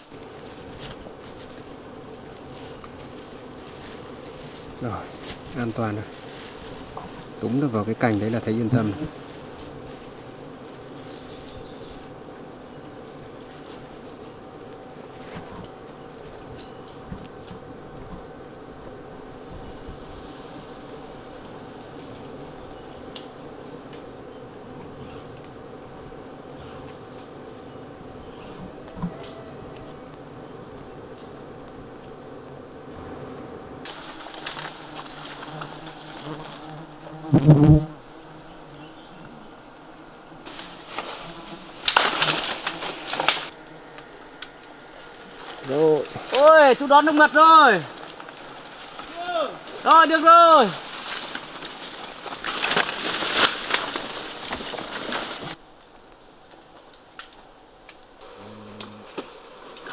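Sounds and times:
crackling: 0.0s - 19.8s, 28.4s - 59.9s
rustling: 0.0s - 27.4s, 28.4s - 59.9s
bees humming: 0.0s - 55.6s, 58.1s - 59.9s.

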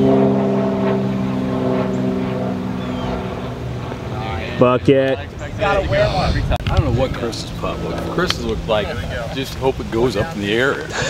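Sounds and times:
engine droning hum: 0.0s - 11.0s.

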